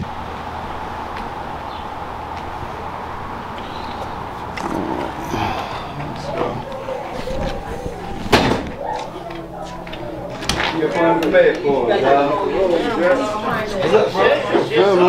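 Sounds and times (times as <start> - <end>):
indistinct voices: 0.0 - 15.0
door banging shut: 8.2 - 9.1.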